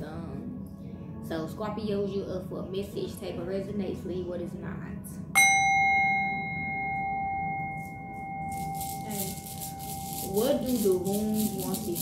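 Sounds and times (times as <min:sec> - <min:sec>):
singing bowl ringing: 0:05.4 - 0:12.0.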